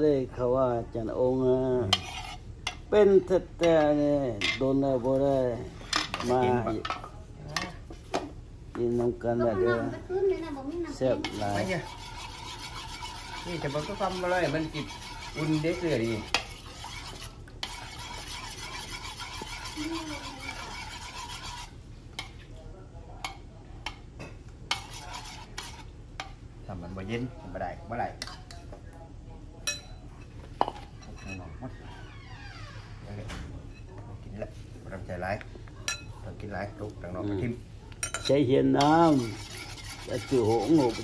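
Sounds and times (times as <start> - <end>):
metal spoon stirring in ceramic bowl: 1.8 - 2.9, 11.0 - 22.6, 23.2 - 26.4, 38.0 - 41.0
spoon clinking against bowl: 29.6 - 30.0, 38.0 - 38.9
metal spoon clinking against bowls: 29.6 - 31.5, 35.9 - 36.1, 38.0 - 39.6.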